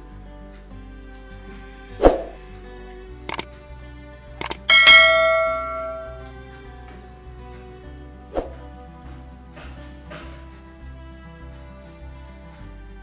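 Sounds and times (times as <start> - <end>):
soft background music: 0.0 - 13.0
mouse-like clicks: 4.4 - 4.7
bright bell ding: 4.4 - 6.3.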